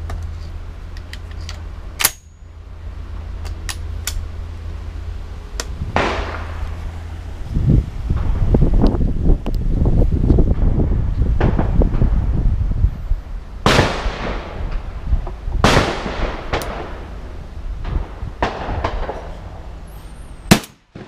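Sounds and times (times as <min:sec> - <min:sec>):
wind rumbling on microphone: 0:00.0 - 0:20.6
shotgun shots echoing: 0:06.0 - 0:06.7, 0:13.6 - 0:14.6, 0:15.6 - 0:17.0, 0:20.5 - 0:21.0.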